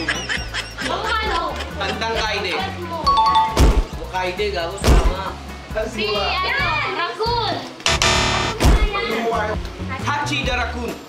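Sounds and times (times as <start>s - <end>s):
background music: 0.0s - 11.0s
loud buzzing: 7.9s - 8.9s.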